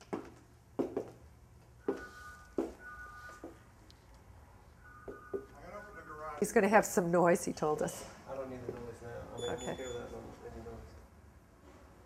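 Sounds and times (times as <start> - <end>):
two-tone electronic beep: 1.8 - 3.5, 4.8 - 5.6.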